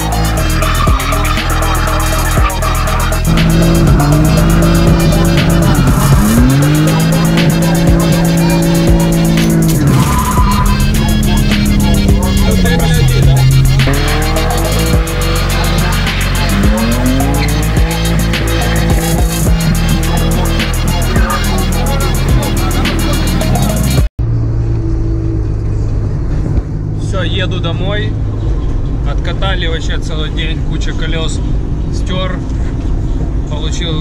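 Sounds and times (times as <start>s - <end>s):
tyre squeal: 0.0s - 23.7s
music with steady beat: 0.0s - 24.1s
car engine revving: 0.0s - 33.0s.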